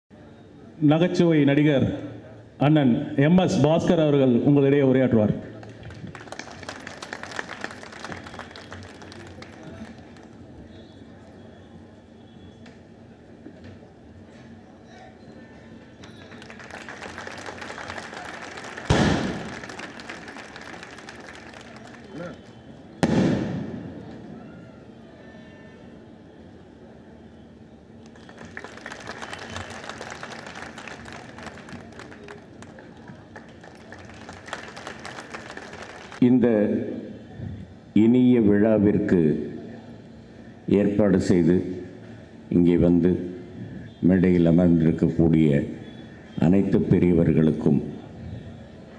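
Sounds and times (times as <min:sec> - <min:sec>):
audience applause: 0:05.6 - 0:10.6, 0:16.0 - 0:22.6, 0:28.0 - 0:36.2.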